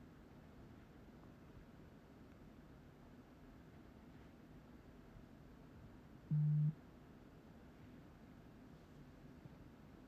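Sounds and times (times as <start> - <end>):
low-pitched electronic tone: 6.3 - 6.8.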